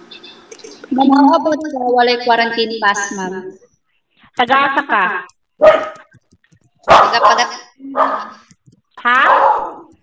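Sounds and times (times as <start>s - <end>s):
dog barking: 5.6s - 6.1s, 6.8s - 8.4s, 9.2s - 10.0s.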